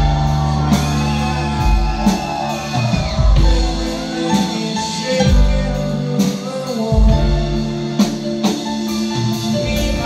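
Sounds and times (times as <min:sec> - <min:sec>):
deep bass line: 0:00.0 - 0:10.0.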